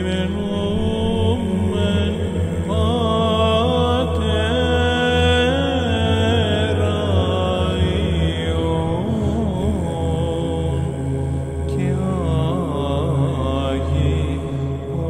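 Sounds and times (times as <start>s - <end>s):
low held vocal drone: 0.0s - 15.0s
man singing ornamented chant: 0.0s - 15.0s.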